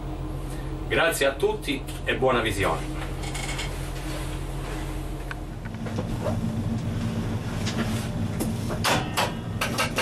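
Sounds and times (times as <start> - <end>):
train engine low drone: 0.0 - 10.0.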